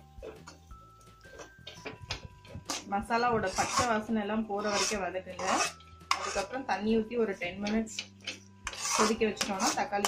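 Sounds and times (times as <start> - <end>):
metal spoon scraping a pan: 1.2 - 10.0.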